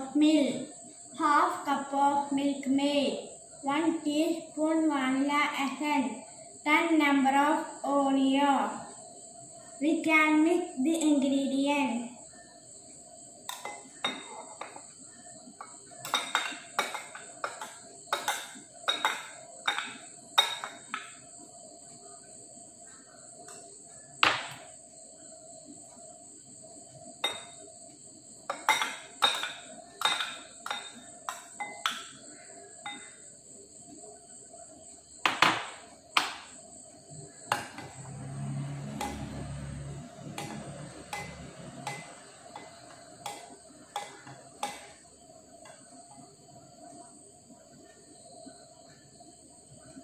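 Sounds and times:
spoon clinking against bowls: 13.5s - 14.8s, 15.6s - 21.1s, 28.5s - 32.1s, 32.8s - 33.2s, 40.2s - 45.0s.

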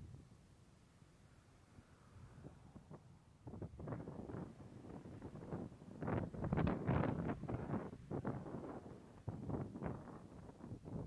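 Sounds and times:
wind buffeting microphone: 2.1s - 11.0s.

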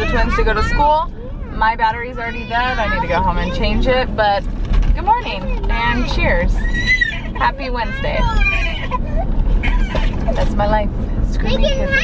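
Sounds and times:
car driving rumble: 0.0s - 12.0s
small child's meow-like cries: 8.3s - 10.2s.

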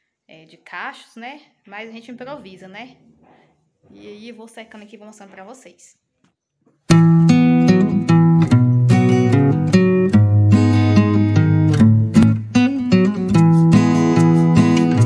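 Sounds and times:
strummed acoustic guitar: 6.9s - 15.0s.

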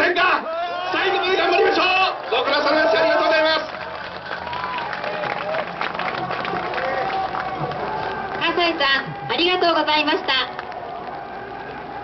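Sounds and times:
crowd voices: 0.0s - 12.0s
crowd clapping: 1.0s - 12.0s.

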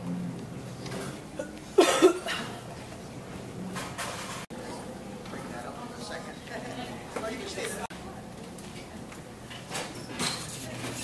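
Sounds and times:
person coughing: 1.4s - 2.6s.

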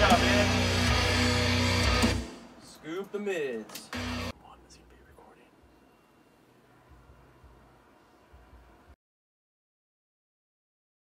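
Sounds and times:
amplified guitar burst: 0.0s - 2.4s
faint voices whispering: 4.4s - 5.7s.

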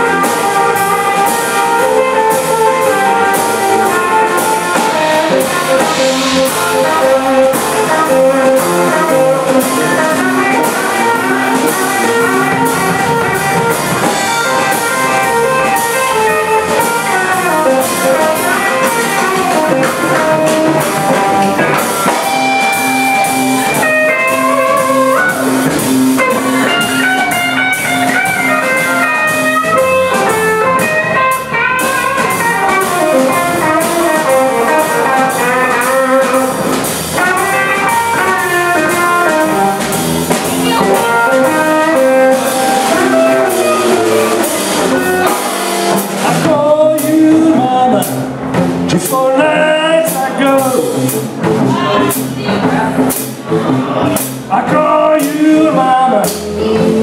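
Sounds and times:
drum kit: 0.0s - 57.0s
electric bass: 0.0s - 57.0s
electric blues guitar solo: 0.0s - 57.0s.

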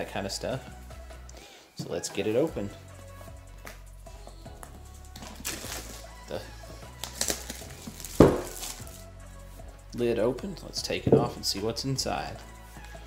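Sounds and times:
background music: 0.0s - 13.0s
plastic shrink wrap tearing: 5.2s - 6.1s, 7.0s - 9.0s
cardboard box knocking: 8.2s - 8.6s.

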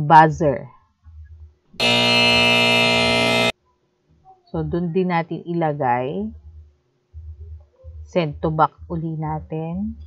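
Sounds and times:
loud buzzer tone: 1.8s - 3.5s.

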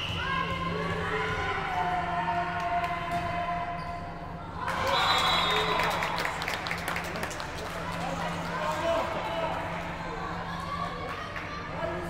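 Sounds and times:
spectators cheering: 4.6s - 7.2s.

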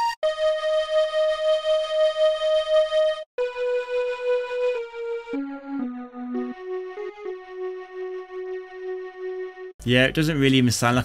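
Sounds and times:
sampled toy-flute melody: 0.0s - 8.0s.

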